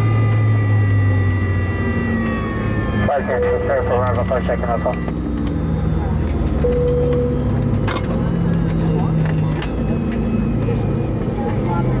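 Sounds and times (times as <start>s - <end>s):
low cabin hum: 0.0s - 12.0s
passengers talking: 0.0s - 12.0s
brief steady tone: 3.0s - 7.6s.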